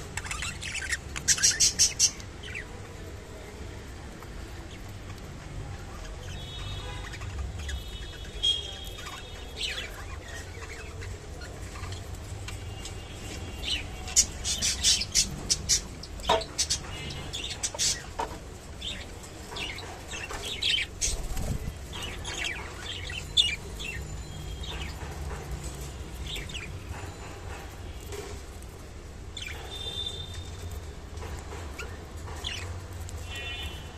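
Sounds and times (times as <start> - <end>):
budgerigars chirping: 0.1 - 2.7.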